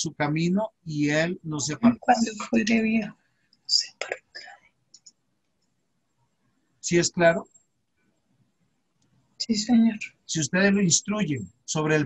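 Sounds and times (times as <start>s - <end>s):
man speaking: 0.0s - 3.1s, 6.9s - 7.4s, 9.4s - 12.0s
short whispered sounds: 0.1s - 3.1s, 3.7s - 4.6s.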